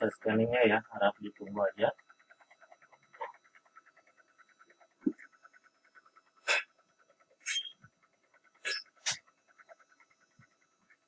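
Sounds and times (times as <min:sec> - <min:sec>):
scanner mechanism pulsing: 0:00.0 - 0:11.0.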